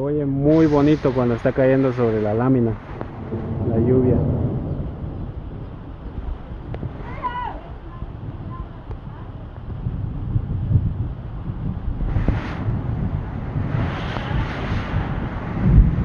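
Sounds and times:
heavy rain: 0.0s - 16.0s
wind gusts rumbling on microphone: 0.0s - 16.0s.

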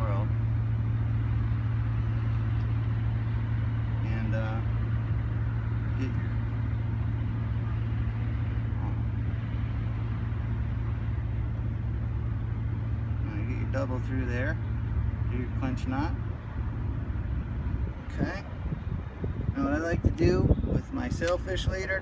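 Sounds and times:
idling motor hum: 0.0s - 22.0s.

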